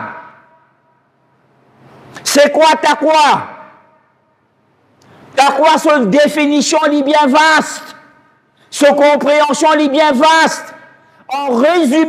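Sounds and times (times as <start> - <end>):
man speaking: 2.2 - 3.8, 5.4 - 12.0.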